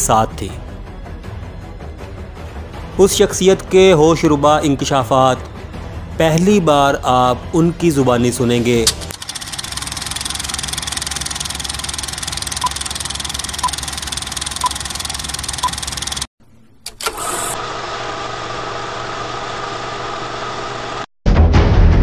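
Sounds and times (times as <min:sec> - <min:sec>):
film projector clattering: 0:08.8 - 0:16.3
short beeps: 0:15.6 - 0:15.9.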